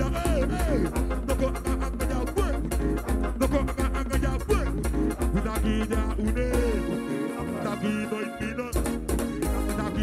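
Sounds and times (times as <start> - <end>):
band playing: 0.0 - 10.0
deep bass: 0.0 - 10.0
guitar melody: 0.0 - 10.0.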